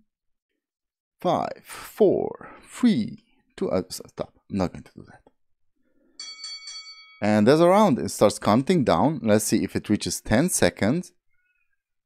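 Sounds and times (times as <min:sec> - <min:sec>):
bell ringing rapidly: 0:06.2 - 0:07.8.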